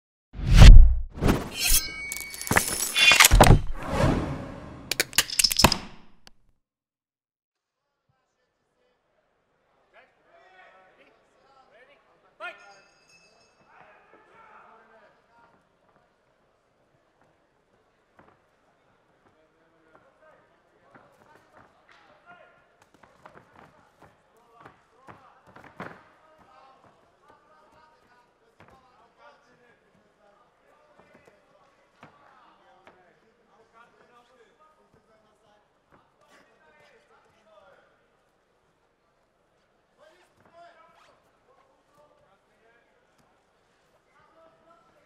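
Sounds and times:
smaller hit: 0:00.4 - 0:05.0.

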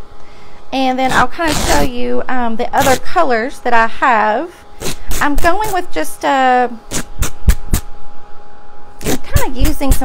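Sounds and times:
cloth ripping: 0:01.1 - 0:01.9, 0:02.8 - 0:03.0, 0:04.8 - 0:05.8, 0:06.9 - 0:07.8, 0:09.0 - 0:09.4.

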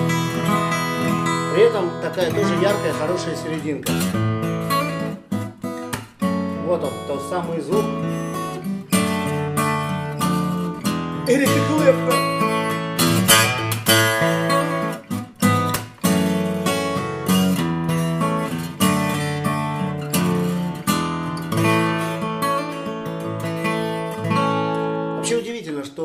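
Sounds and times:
fingerstyle acoustic guitar: 0:00.0 - 0:25.6.

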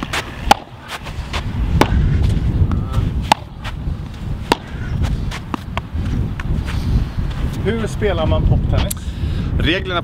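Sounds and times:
paddle hitting ball: 0:00.0 - 0:00.8, 0:03.2 - 0:03.6, 0:04.5 - 0:04.7.

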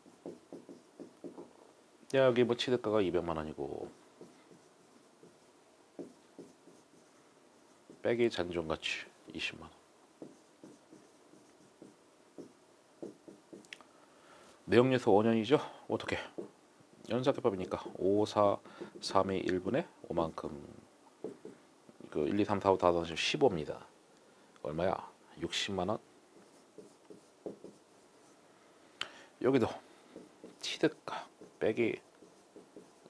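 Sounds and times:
marker pen writing on board: 0:00.0 - 0:01.5, 0:03.8 - 0:08.2, 0:10.2 - 0:13.7, 0:16.3 - 0:16.6, 0:18.8 - 0:19.2, 0:21.2 - 0:21.6, 0:26.4 - 0:28.4, 0:30.1 - 0:33.0.

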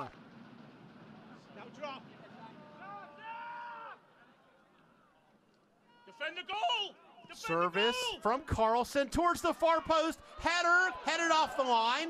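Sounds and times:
low crowd murmur: 0:00.0 - 0:06.2.

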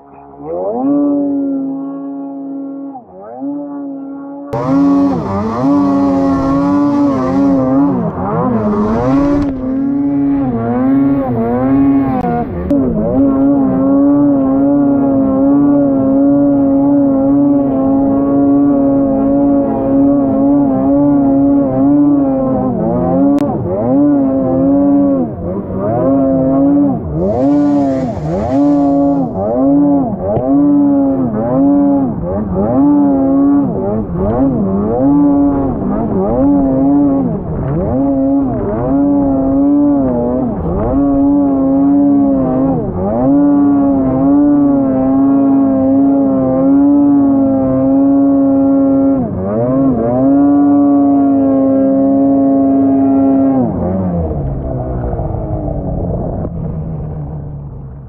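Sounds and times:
snowmobile engine revving: 0:00.0 - 0:58.0.

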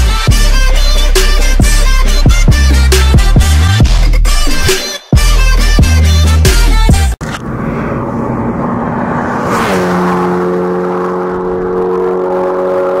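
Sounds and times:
car engine running: 0:07.0 - 0:13.0.

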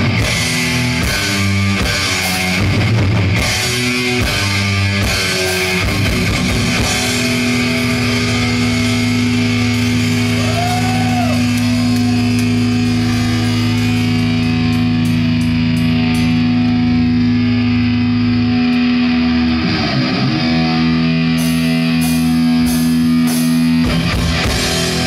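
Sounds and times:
metal band playing live: 0:00.0 - 0:25.0.

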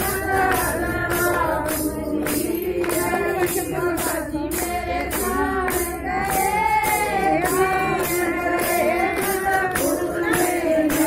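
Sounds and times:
hand clapping: 0:00.0 - 0:11.0
women singing in unison: 0:00.0 - 0:11.0.

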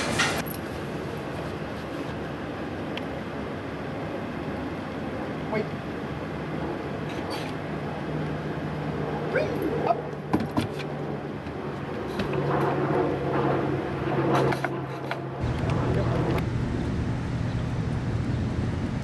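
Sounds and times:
low hum: 0:00.0 - 0:19.0
street traffic rumble: 0:00.0 - 0:19.0.

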